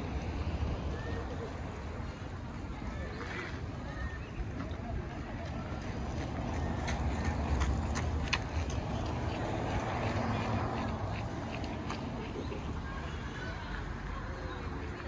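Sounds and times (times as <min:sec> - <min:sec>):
faint distant voices: 0:00.0 - 0:15.0.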